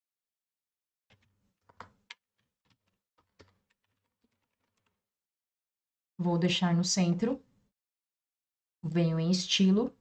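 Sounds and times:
computer keyboard typing: 1.1 - 5.0.

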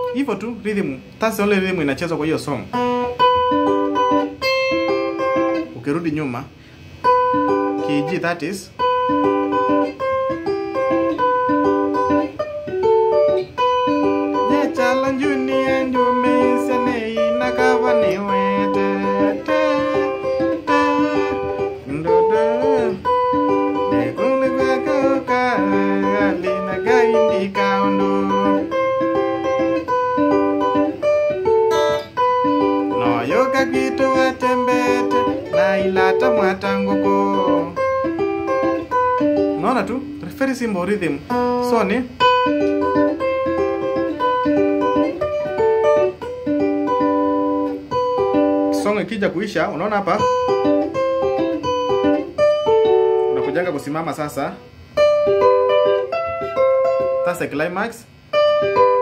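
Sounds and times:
electric guitar picking fast notes: 2.7 - 5.8, 6.6 - 57.4, 58.1 - 59.0.

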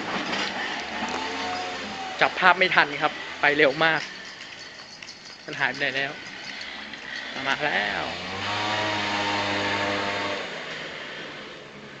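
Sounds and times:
scooter passing: 0.0 - 11.7.

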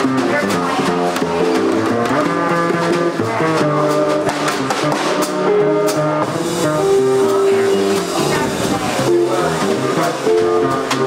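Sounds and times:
drum kit cymbals and drums: 0.0 - 11.0
guitar: 0.0 - 11.0
upright bass: 0.0 - 11.0
saxophone melody: 0.8 - 11.0.

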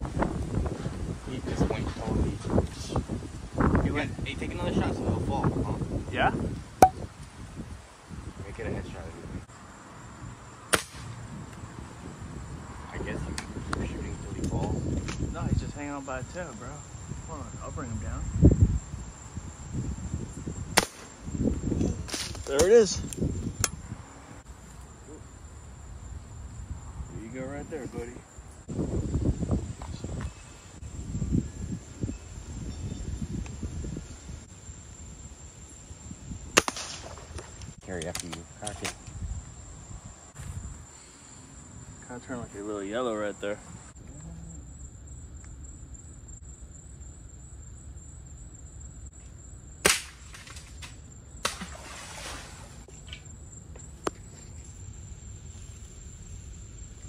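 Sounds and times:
air rifle shot: 10.7 - 11.2, 20.8 - 21.1, 36.6 - 37.2, 49.8 - 50.6.

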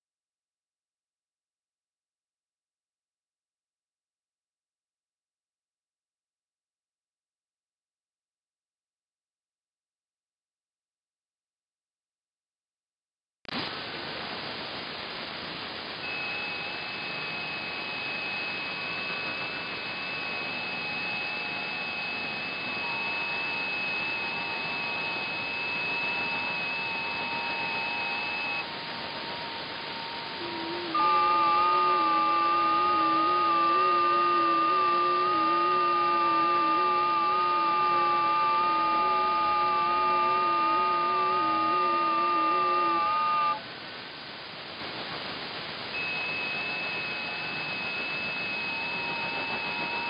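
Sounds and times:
radio receiver hiss: 13.5 - 50.0
faint digital radio tones: 16.0 - 43.6, 45.9 - 50.0.

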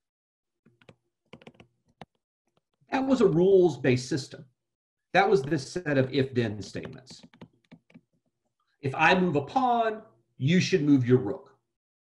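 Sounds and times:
faint computer clicking: 6.7 - 8.2.

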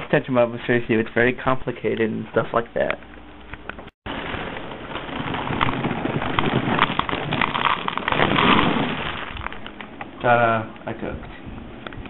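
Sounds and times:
dry pieces poured into a bowl: 5.5 - 9.6.

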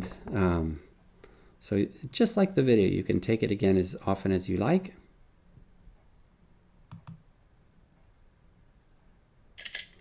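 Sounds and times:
computer mouse clicks: 6.9 - 7.3.

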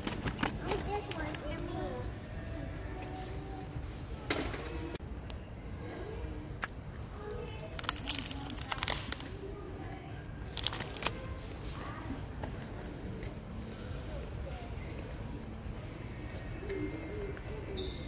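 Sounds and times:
faint voices: 0.0 - 18.0
plastic packaging clicks and crackles: 6.6 - 11.4.

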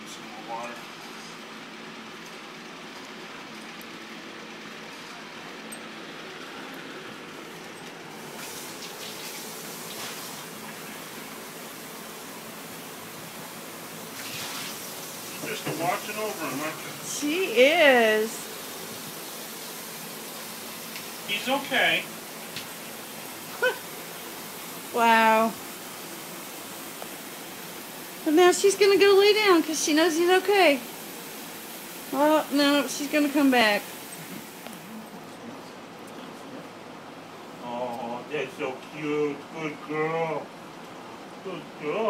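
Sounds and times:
steady hiss: 8.0 - 35.2.

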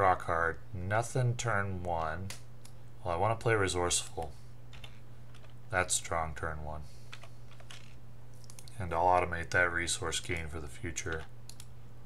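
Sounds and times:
steady low hum: 0.0 - 12.0
mouse and keyboard clicks: 7.2 - 8.8.

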